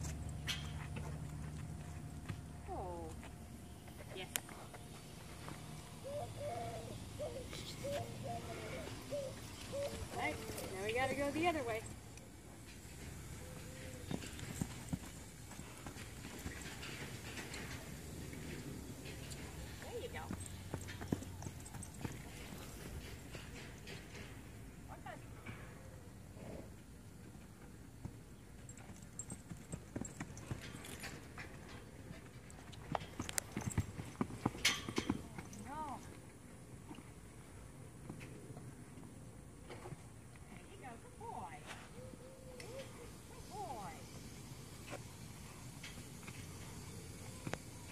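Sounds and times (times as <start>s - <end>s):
horse hoofbeats on sand: 12.8s - 24.3s, 28.0s - 36.1s.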